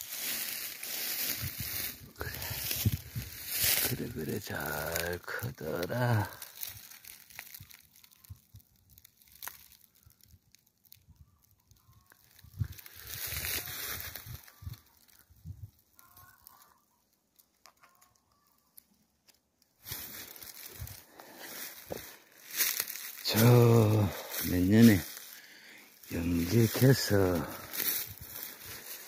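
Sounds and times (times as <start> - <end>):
dry leaves crunching underfoot: 0.0 - 10.4, 11.7 - 16.8, 17.7 - 29.0.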